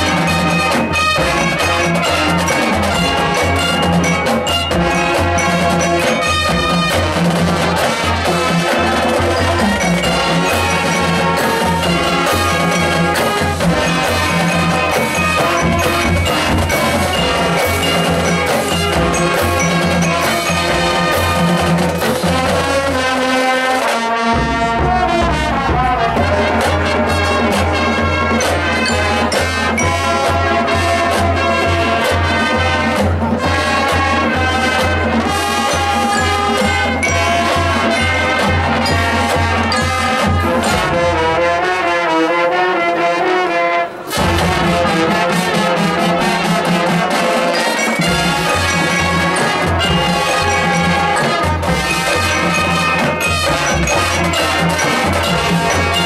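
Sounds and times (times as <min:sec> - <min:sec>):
marching band brass chords: 0:00.0 - 0:56.0.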